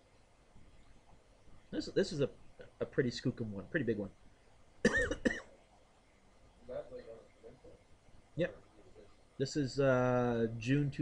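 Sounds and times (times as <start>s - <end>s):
man coughing: 4.8s - 5.5s.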